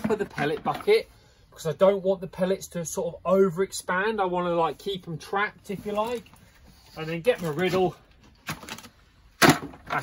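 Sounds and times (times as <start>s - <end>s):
plastic bucket clack: 0.0s - 1.0s, 8.4s - 10.0s
plastic buckets knocking: 0.0s - 1.0s.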